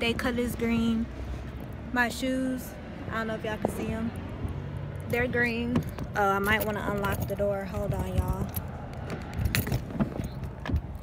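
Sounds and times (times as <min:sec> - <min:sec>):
keys jingling: 0:05.8 - 0:11.0.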